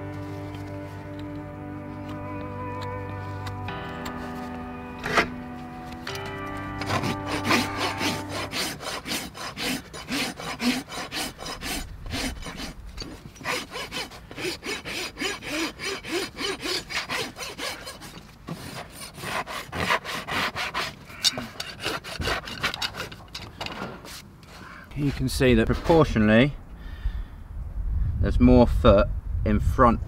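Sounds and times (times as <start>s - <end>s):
rasp scraping a hoof: 2.0s - 26.0s.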